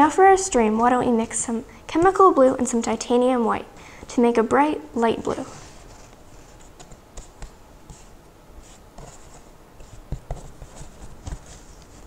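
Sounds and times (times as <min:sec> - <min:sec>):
brush tapping palette: 0:06.6 - 0:11.6.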